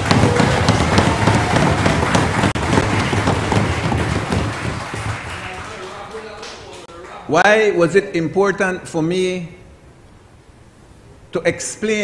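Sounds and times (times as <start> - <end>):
crowd thumping and clapping: 0.0 - 6.9.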